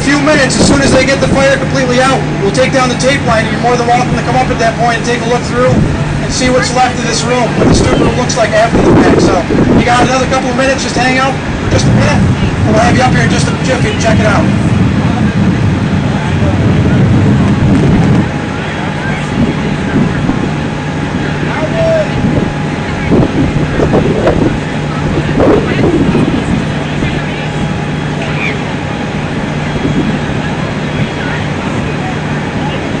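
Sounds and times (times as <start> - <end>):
engine hum: 0.0 - 33.0
faint voices: 0.0 - 33.0.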